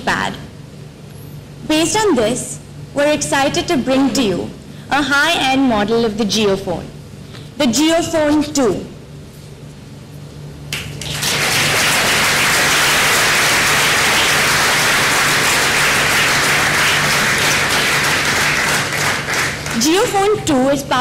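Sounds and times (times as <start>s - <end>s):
audience applauding: 10.7s - 20.0s.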